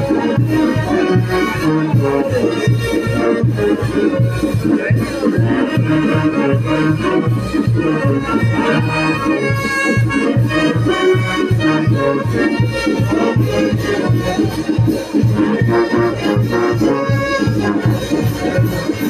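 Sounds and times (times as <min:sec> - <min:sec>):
brass band dance music: 0:00.0 - 0:19.0
sousaphone bass beat: 0:00.0 - 0:19.0.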